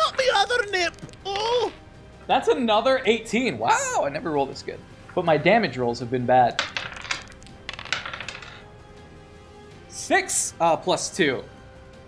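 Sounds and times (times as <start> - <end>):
faint background music: 0.0 - 12.0
dice clattering on a table: 6.5 - 8.7.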